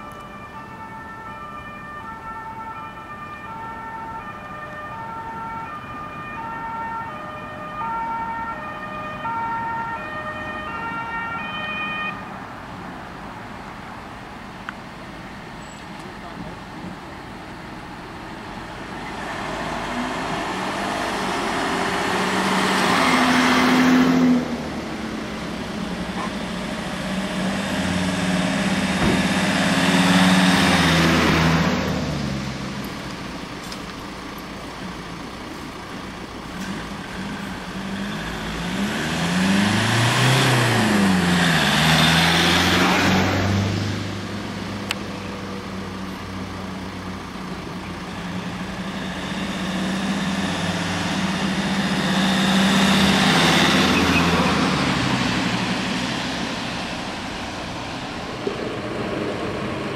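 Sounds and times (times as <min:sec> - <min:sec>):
vehicles driving past: 0:00.0 - 0:59.9.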